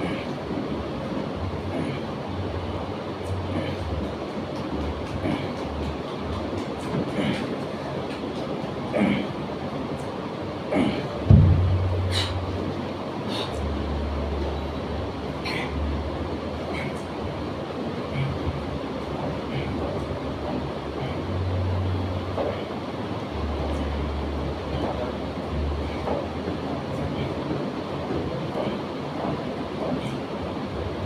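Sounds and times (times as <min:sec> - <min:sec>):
steady rumble: 0:00.0 - 0:31.0
deep low hum shifting pitch: 0:11.2 - 0:12.8
thump: 0:11.3 - 0:11.8.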